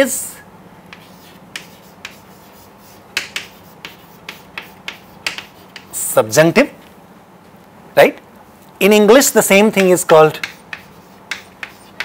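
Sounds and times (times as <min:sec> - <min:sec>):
chalk clicking on blackboard: 0:00.9 - 0:06.0, 0:09.7 - 0:12.0.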